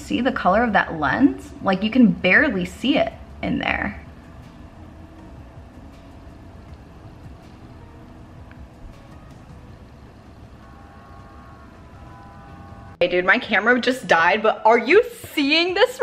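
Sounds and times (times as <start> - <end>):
low background rumble: 0.0 - 14.6
faint hum: 0.0 - 15.4.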